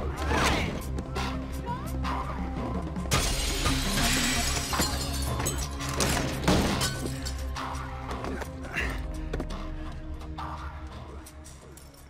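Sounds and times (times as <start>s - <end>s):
glass shattering: 3.1s - 7.6s.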